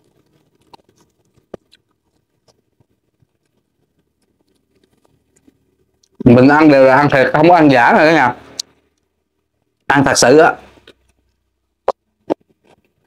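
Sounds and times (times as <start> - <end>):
mouth clicks and chewing smacks: 0.0 - 6.2.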